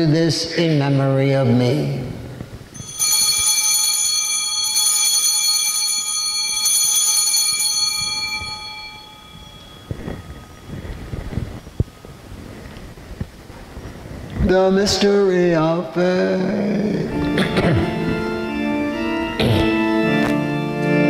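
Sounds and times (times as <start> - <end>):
altar bells ringing: 2.8 - 11.6.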